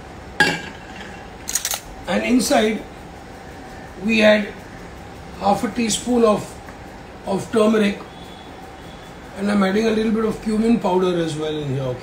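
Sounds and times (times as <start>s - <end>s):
kitchen utensils clattering: 0.4s - 1.3s.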